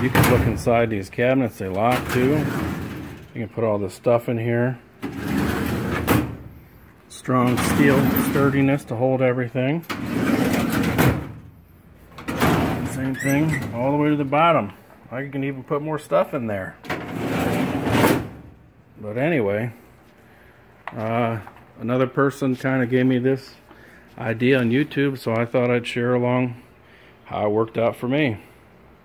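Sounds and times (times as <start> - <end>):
metal drawer clanking shut: 0.0 - 0.8, 5.0 - 6.5, 7.4 - 8.6, 9.9 - 11.4, 12.2 - 13.8, 16.8 - 18.5
metal drawer sliding on runners: 5.0 - 6.4, 9.9 - 11.4, 16.9 - 18.4.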